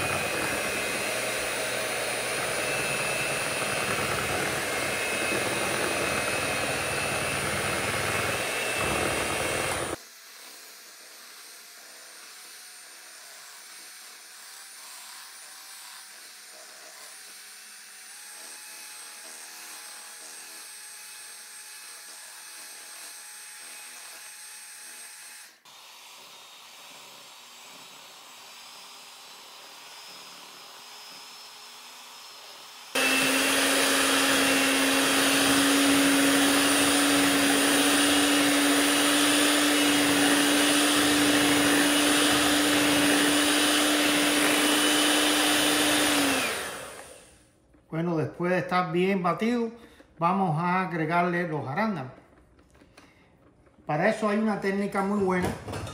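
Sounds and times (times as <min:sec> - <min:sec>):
electric hand mixer whirring: 0:00.0 - 0:47.5.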